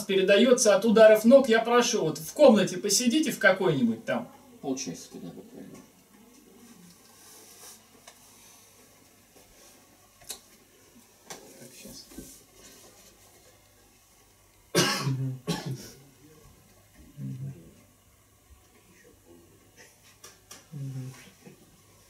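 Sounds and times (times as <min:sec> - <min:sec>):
person coughing loudly: 0:14.7 - 0:16.0.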